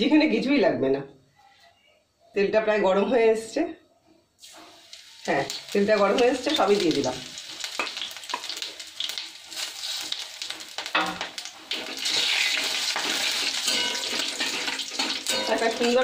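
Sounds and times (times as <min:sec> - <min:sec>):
spices sizzling in hot oil: 0:04.4 - 0:16.0.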